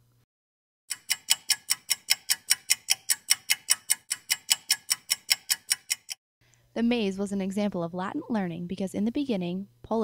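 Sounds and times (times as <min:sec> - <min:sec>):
rapid clock-like ticking: 0:00.9 - 0:06.2.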